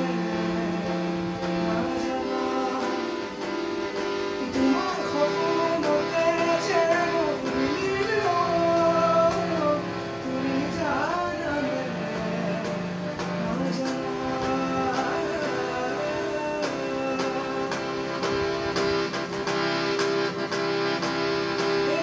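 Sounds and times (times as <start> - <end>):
man singing: 0.0 - 3.3, 4.4 - 18.2
harmonium chords: 0.0 - 22.0.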